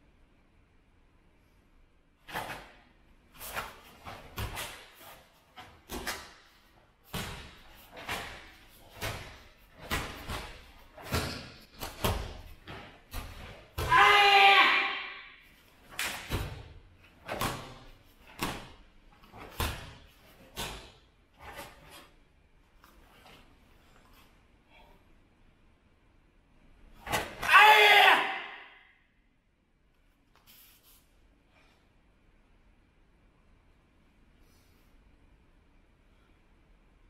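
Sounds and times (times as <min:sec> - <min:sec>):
loud martial arts shout: 0:13.8 - 0:15.4, 0:27.1 - 0:28.9.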